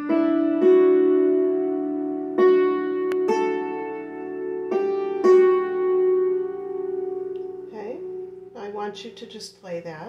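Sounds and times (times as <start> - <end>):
woman's voice: 7.7 - 10.0.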